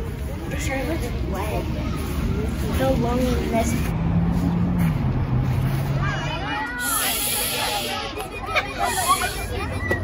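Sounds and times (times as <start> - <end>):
children's voices: 0.0 - 3.9, 5.7 - 10.0
burst of hiss: 6.8 - 8.0.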